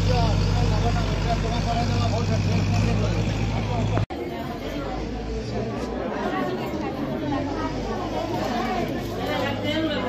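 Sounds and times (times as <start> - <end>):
vehicle engine idling: 0.0 - 4.0
people talking: 0.0 - 10.0.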